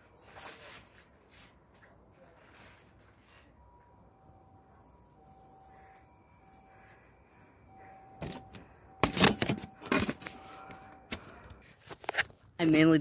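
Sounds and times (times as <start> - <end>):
faint thin steady tones: 2.1 - 11.8.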